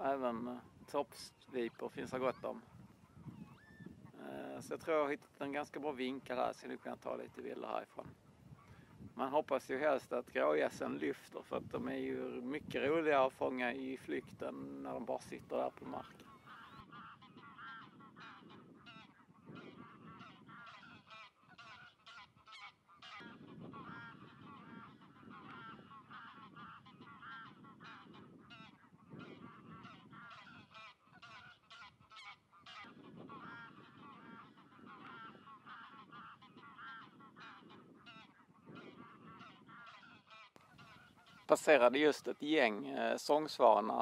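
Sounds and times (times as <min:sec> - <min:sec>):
geese honking: 0:00.0 - 0:44.0.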